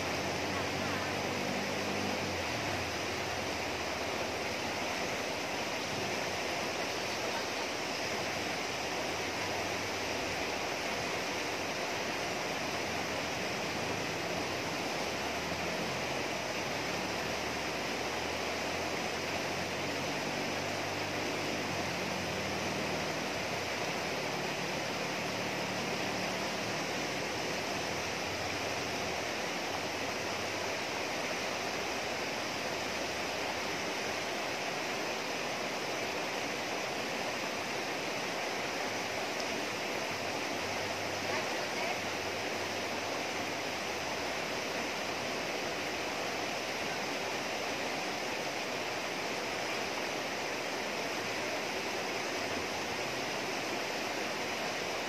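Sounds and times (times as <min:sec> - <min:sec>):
river rushing over rocks: 0:00.0 - 0:55.0.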